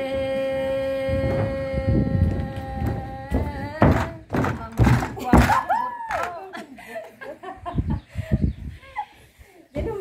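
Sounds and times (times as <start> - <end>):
camera thumps and knocks: 2.3 - 5.7.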